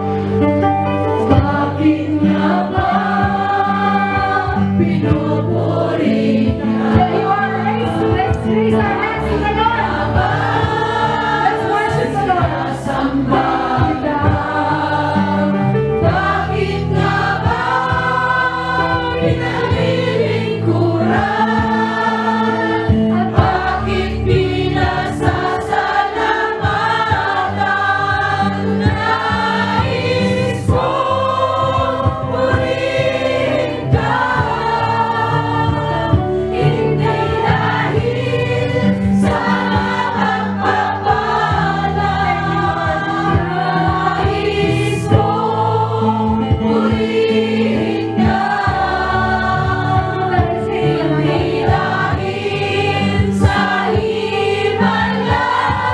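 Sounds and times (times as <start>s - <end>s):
instrumental accompaniment: 0.0s - 55.9s
choir singing: 1.2s - 55.9s.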